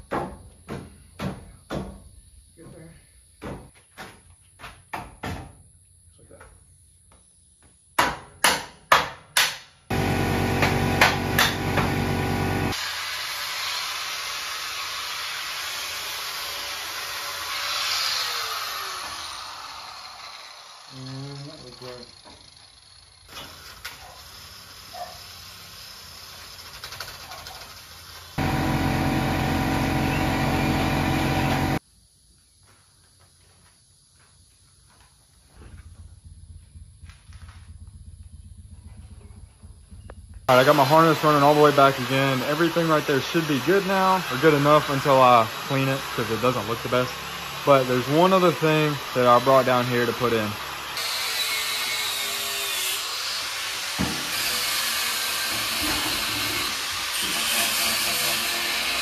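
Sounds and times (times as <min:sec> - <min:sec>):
loud power tool running: 0:09.9 - 0:23.2, 0:28.4 - 0:31.8, 0:40.5 - 0:59.0
hiss: 0:12.7 - 0:28.4.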